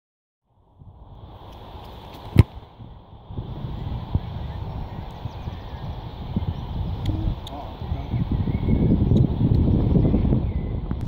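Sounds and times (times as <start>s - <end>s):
wind rumble on microphone: 0.5s - 11.0s
foot kicking a football: 1.8s - 2.6s.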